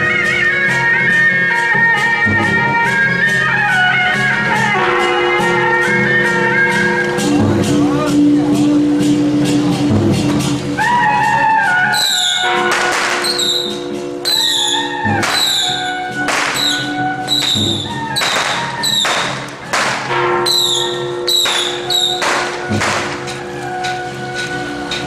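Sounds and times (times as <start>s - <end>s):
held wind instrument tones: 0.0s - 9.7s, 10.5s - 25.0s
loud crashing percussion strikes: 11.9s - 25.0s.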